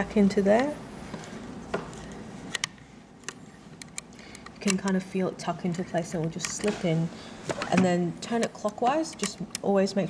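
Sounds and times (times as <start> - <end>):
small metal clicks: 7.5 - 9.8.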